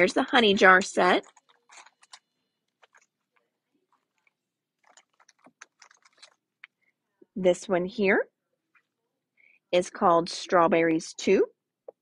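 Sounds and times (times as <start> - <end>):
cellophane packaging crackling: 0.4 - 6.5.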